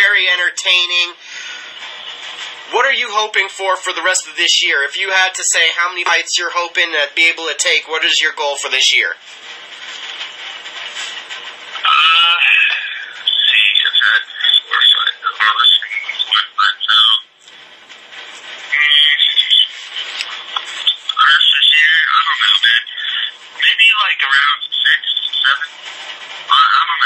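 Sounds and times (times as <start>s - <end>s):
distorted man talking: 0.0s - 9.2s, 11.8s - 17.6s, 18.2s - 27.0s.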